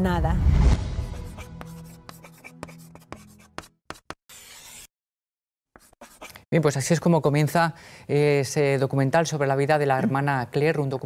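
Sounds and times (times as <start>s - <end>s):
pen scratching on paper: 1.0s - 4.9s, 5.8s - 6.5s.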